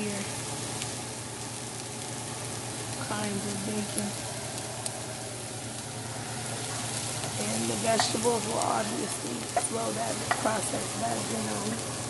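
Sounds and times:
food sizzling in oil: 0.0s - 12.0s
low steady hum: 0.0s - 12.0s.

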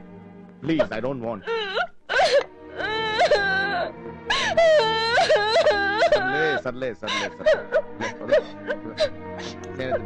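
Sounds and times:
background music: 0.0s - 10.0s
woman wailing: 1.4s - 10.0s.

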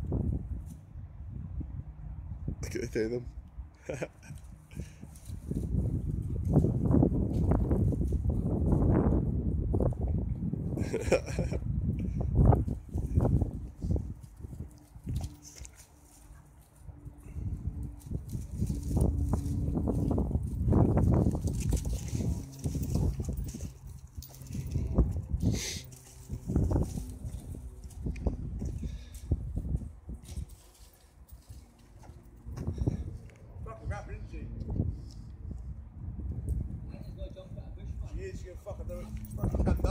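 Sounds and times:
dogs scuffling: 12.9s - 17.2s, 17.9s - 28.1s.

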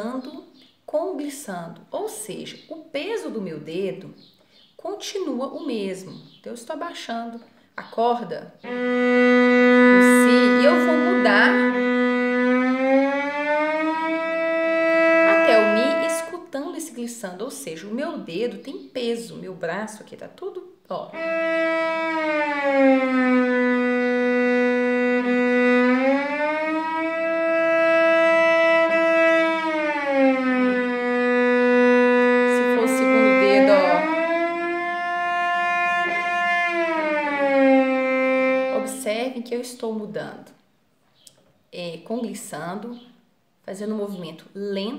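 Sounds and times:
bowed cello glissando: 8.6s - 16.4s, 21.0s - 39.4s.

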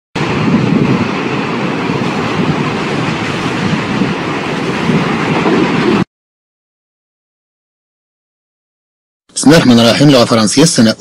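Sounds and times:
loud rushing noise with low pulsing: 0.2s - 6.1s.

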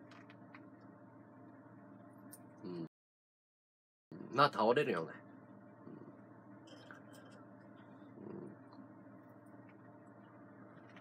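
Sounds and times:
steady low hum: 0.0s - 2.9s, 4.1s - 11.0s.

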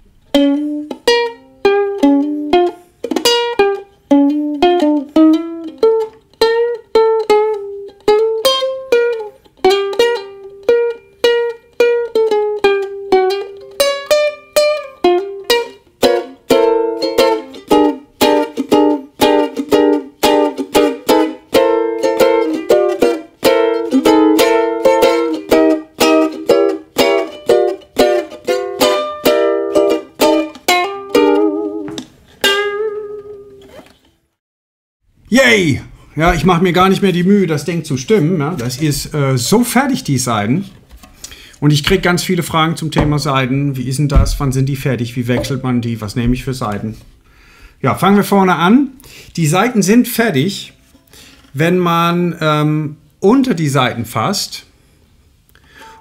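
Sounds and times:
ukulele playing: 0.0s - 34.1s, 36.2s - 47.2s, 55.8s - 56.0s.

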